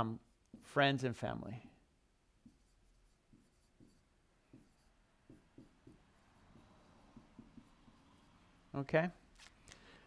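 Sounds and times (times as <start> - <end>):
marker writing on whiteboard: 1.5 - 8.7.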